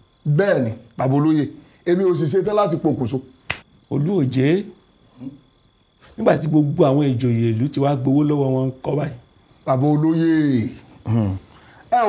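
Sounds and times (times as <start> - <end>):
crickets chirping: 0.0 - 12.0
man speaking: 0.3 - 3.3, 3.9 - 5.4, 6.1 - 12.0.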